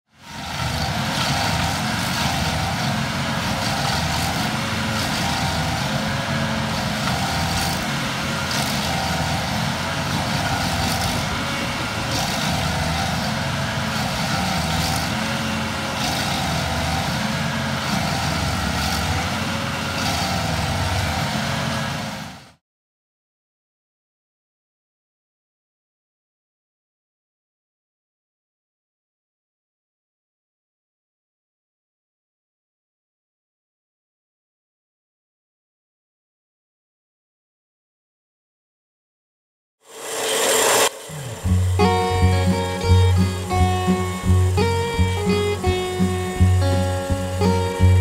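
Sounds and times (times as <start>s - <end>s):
large engine running under load: 0.2s - 22.6s, 40.0s - 48.0s.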